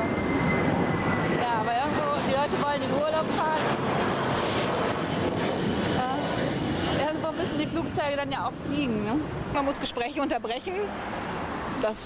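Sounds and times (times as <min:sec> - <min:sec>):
jet airliner flying overhead: 0:00.0 - 0:12.0.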